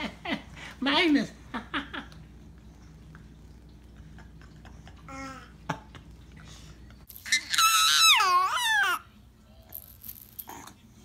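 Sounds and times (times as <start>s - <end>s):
baby squealing: 7.2s - 9.0s.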